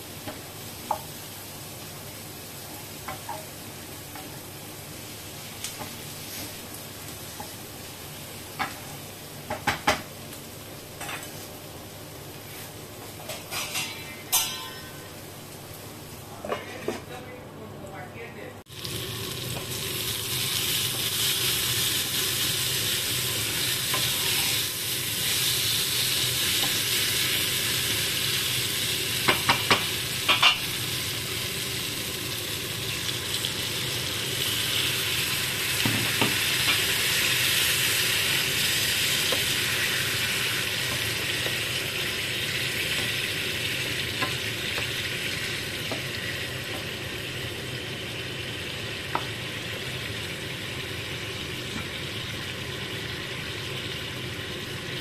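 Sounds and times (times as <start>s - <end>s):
gravy sizzling in a frying pan: 0.0s - 16.9s, 18.6s - 55.0s.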